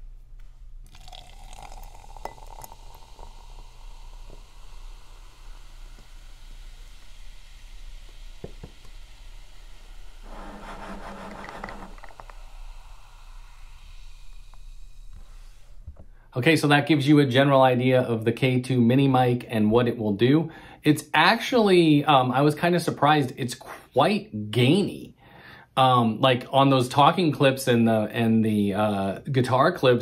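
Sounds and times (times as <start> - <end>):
soda fizzing: 0.8 - 15.7
soda poured into a glass: 0.9 - 7.8.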